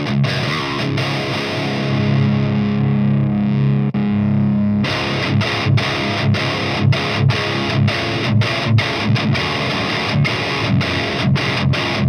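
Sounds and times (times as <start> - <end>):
distorted electric guitar chord: 0.0 - 12.0
palm-muted guitar riffing: 0.0 - 12.0.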